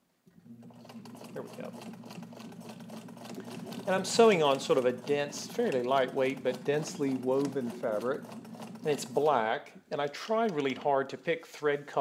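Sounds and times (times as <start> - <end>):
sewing machine running: 0.5 - 9.5.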